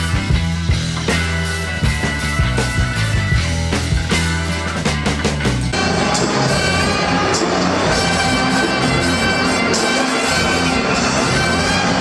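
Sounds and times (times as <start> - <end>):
live band playing in arena: 0.0 - 12.0.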